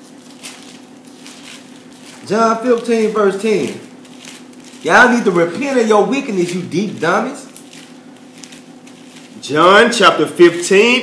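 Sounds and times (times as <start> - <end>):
pages being leafed through: 0.0 - 10.5.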